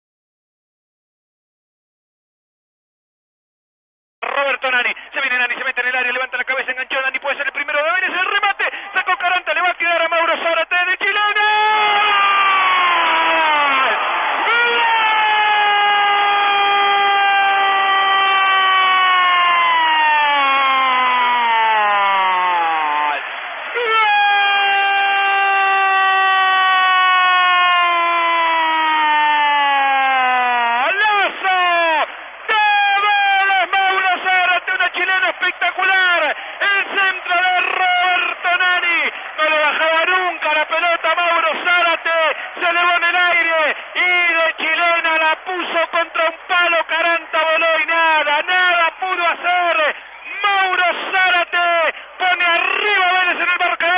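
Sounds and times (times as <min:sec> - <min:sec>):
fast excited shouting: 0:07.3 - 0:53.9
commentator held goal shout: 0:08.0 - 0:53.9.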